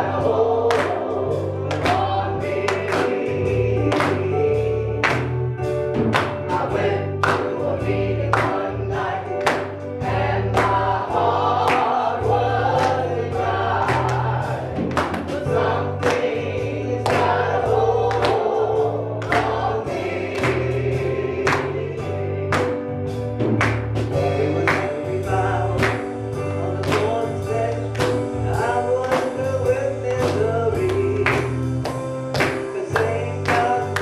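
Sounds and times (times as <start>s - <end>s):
drum kit with cymbals: 0.0s - 34.0s
electronic keyboard bass notes: 0.0s - 34.0s
people singing: 0.0s - 34.0s.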